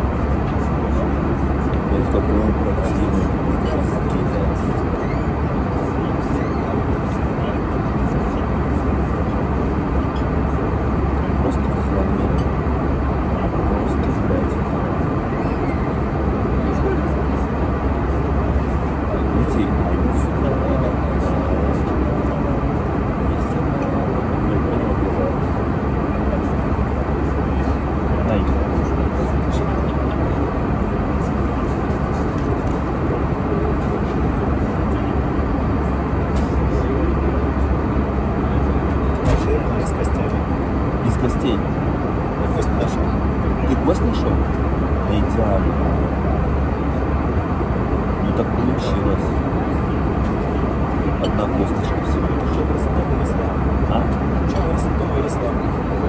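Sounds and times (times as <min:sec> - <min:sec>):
airliner engine drone: 0:00.0 - 0:56.0.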